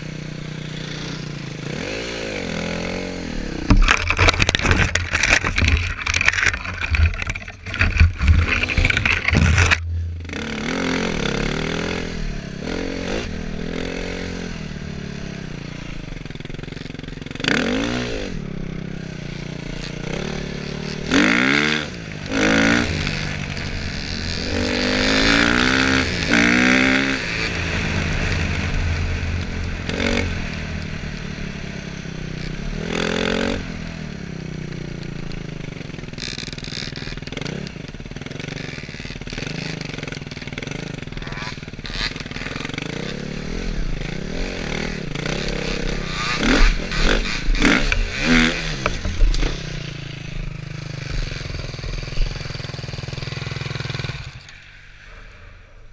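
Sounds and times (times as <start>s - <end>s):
dirt bike engine revving: 0.0s - 55.5s.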